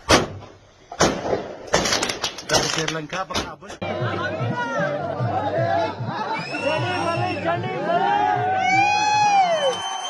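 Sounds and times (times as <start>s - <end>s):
fireworks bangs: 0.0s - 3.0s.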